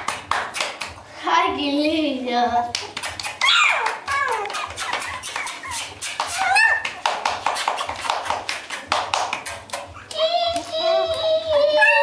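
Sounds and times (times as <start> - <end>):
puppies crying: 3.1 - 7.1, 9.5 - 12.0.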